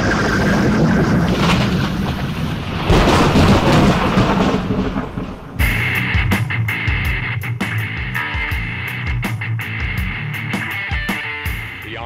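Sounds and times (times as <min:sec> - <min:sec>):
loud rumbling: 0:00.0 - 0:09.0
music: 0:05.6 - 0:12.0.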